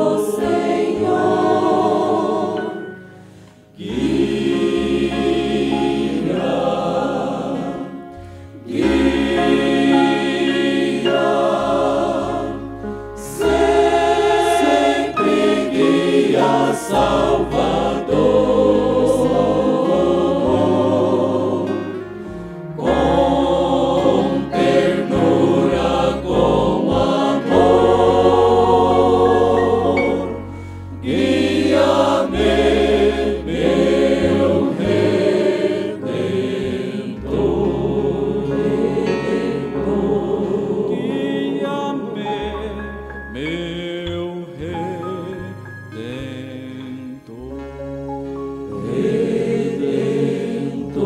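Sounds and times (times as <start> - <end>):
men's vocal group singing a hymn: 0.0 - 48.0, 48.7 - 51.0.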